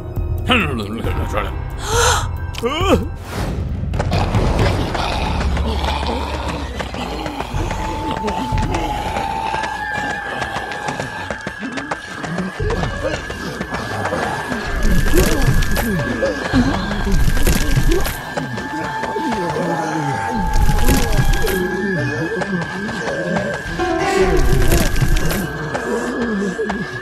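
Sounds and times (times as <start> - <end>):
background music: 0.0 - 27.0
zombie groans: 4.1 - 18.7
wavering high tone: 23.6 - 25.9.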